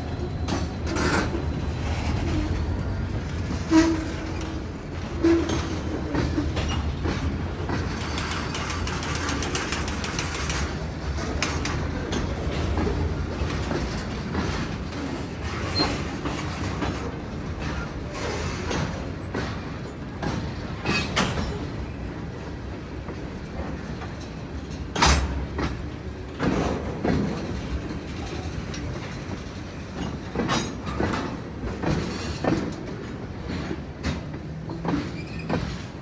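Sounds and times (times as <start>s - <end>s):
wheel clacks over rail joints: 0.2s - 36.0s.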